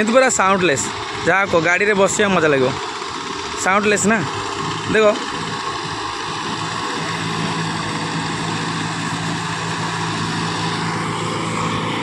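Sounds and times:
tractor diesel engine humming: 0.0 - 12.0.

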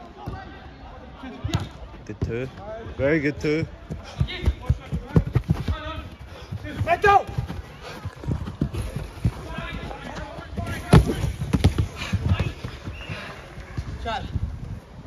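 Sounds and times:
running footsteps on turf: 3.6 - 14.8.

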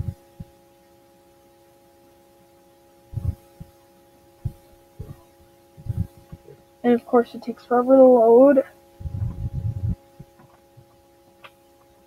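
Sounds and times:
soft low thumps: 0.0 - 0.6, 3.1 - 3.8, 4.4 - 6.6, 9.0 - 11.0
faint electrical hum: 0.0 - 12.0.

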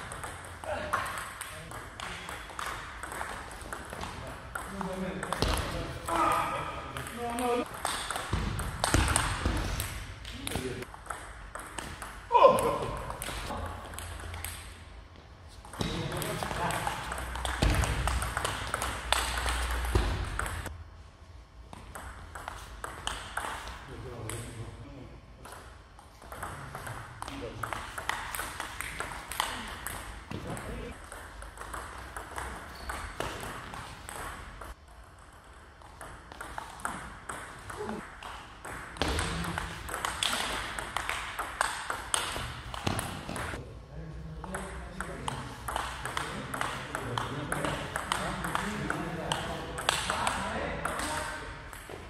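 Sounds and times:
table tennis ball hits: 0.0 - 14.7, 15.6 - 20.7, 25.5 - 43.6.

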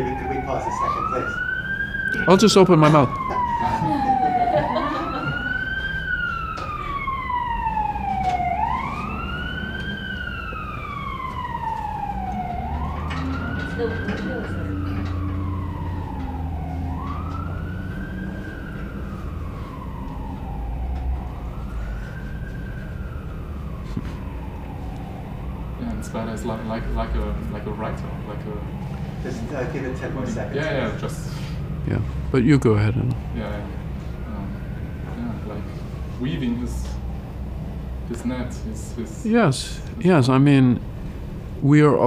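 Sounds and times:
emergency vehicle siren wailing: 0.0 - 41.6.

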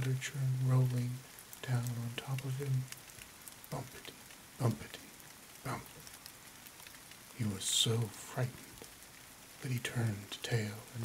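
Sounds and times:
person reading quietly: 0.0 - 11.0
steady rain: 0.0 - 11.0.

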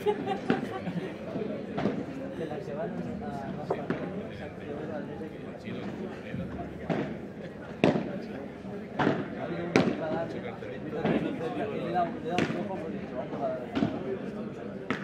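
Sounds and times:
ball struck by rackets: 7.8 - 8.1, 9.0 - 10.1, 12.4 - 12.6.

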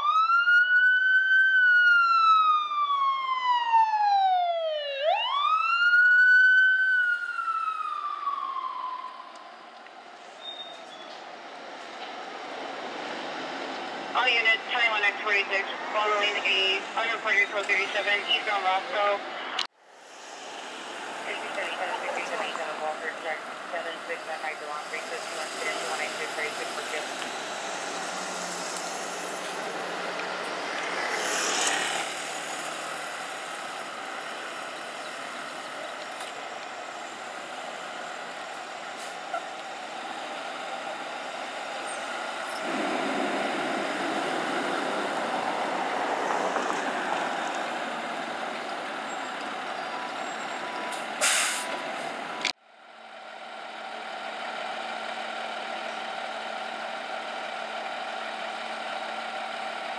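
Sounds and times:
diesel engine running: 11.1 - 46.3, 46.9 - 59.9
diesel engine idling: 14.0 - 31.2, 47.2 - 59.9
air brake hiss: 51.2 - 51.8.

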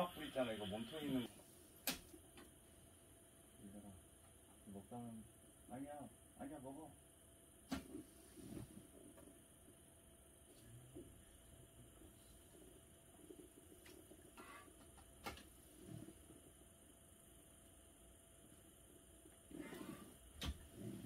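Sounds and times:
faint steady hiss: 0.0 - 21.0.

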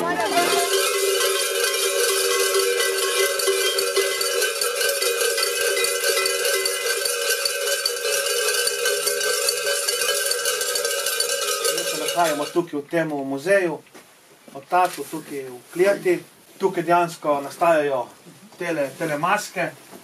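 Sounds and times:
cowbells clanging: 0.0 - 12.8.

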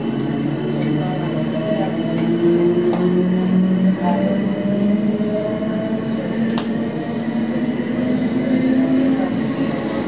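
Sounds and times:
train running rumble and hum: 0.0 - 10.0.

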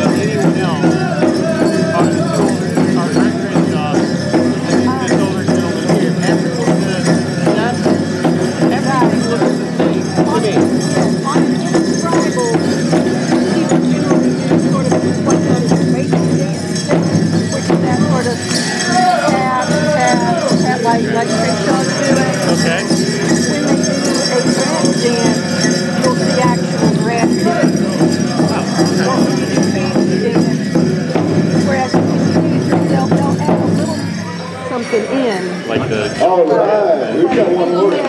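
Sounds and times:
drumbeat: 0.0 - 36.2
group singing: 17.6 - 33.4.

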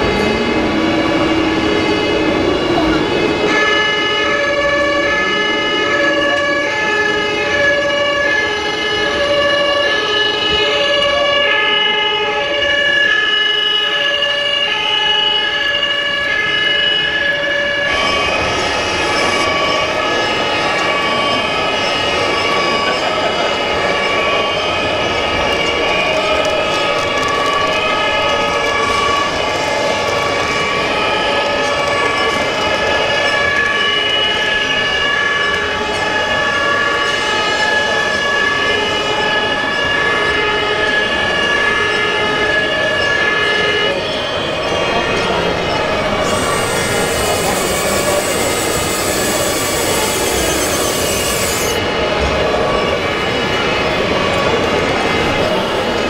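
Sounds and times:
steady background noise: 0.0 - 56.0
two-tone fire engine sirens: 0.0 - 56.0.

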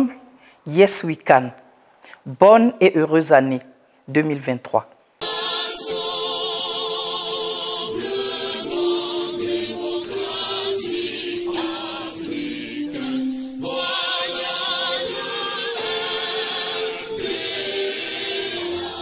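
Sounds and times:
choir singing held notes: 5.2 - 19.0.

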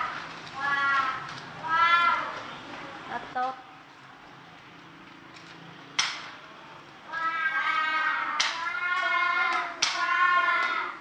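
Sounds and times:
children reading aloud in unison: 0.0 - 3.4, 7.0 - 11.0.

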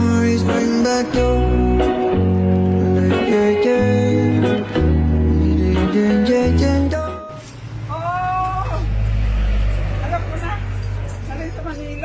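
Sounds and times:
background music: 0.0 - 7.5
passing vehicle engine rumble: 4.2 - 12.0.

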